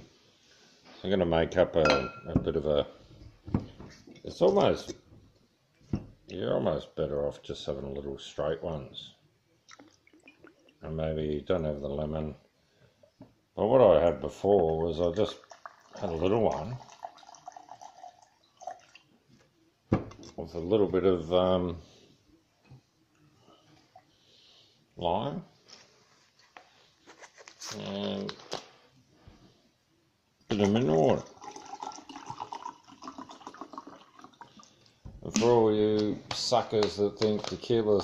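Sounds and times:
water pouring into a glass: 0:14.7 - 0:19.2, 0:30.5 - 0:34.9
drink fizzing: 0:15.0 - 0:19.2, 0:30.6 - 0:35.0
liquid trickling into a glass: 0:15.1 - 0:19.1, 0:30.6 - 0:34.9.

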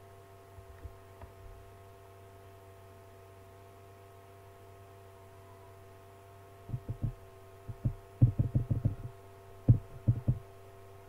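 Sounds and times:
electrical hum: 0:00.0 - 0:11.0
low dull thumps: 0:06.7 - 0:10.4.

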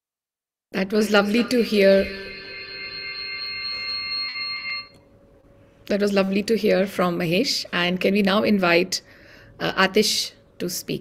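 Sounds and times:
high electronic tone: 0:01.0 - 0:05.0.

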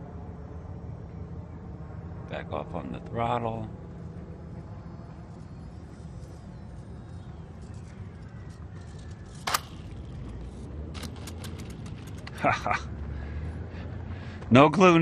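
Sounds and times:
sharp click: 0:09.4 - 0:09.8.

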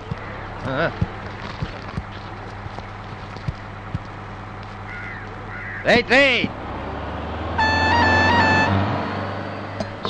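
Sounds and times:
reedy horn-like tone: 0:07.5 - 0:09.8.

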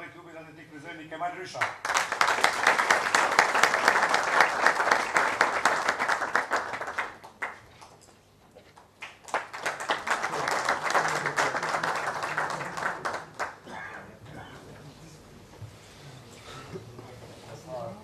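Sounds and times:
audience applause: 0:01.8 - 0:07.9, 0:09.0 - 0:13.6.

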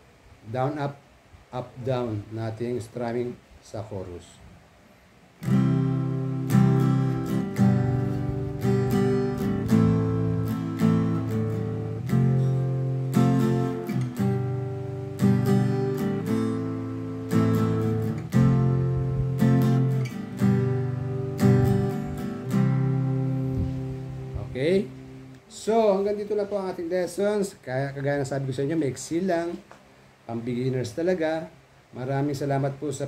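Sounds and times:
acoustic guitar strummed: 0:05.4 - 0:25.5.

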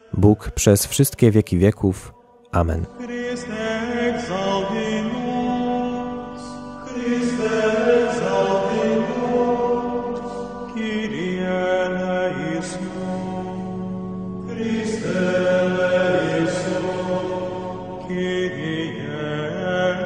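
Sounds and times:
slow sung chant: 0:02.5 - 0:20.0.

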